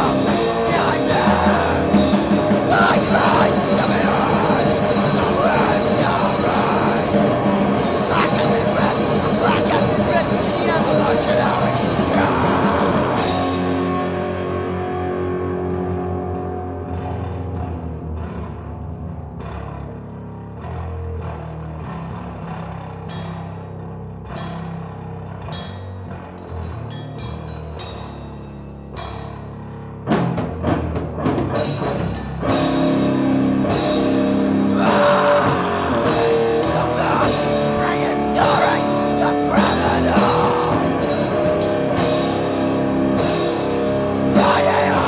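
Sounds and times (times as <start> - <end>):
rock song with guitar and drums: 0.0 - 45.0.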